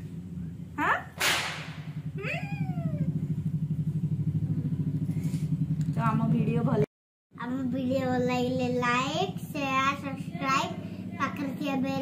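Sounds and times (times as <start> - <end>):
steady low hum: 0.0 - 12.0
sharp hissing swish: 1.2 - 1.8.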